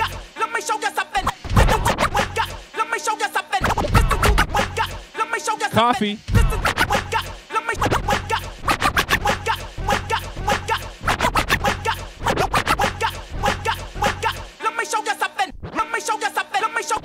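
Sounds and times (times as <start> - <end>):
hip-hop beat: 0.0 - 17.0
turntable scratching: 0.0 - 17.0.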